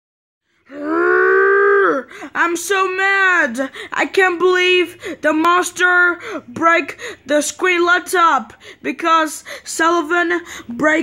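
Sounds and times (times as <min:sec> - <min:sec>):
child wailing: 0:00.7 - 0:02.4.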